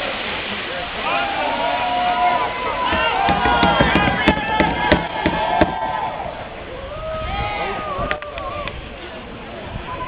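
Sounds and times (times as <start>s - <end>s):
crowd voices: 0.0s - 10.0s
sharp knocks: 2.9s - 5.9s.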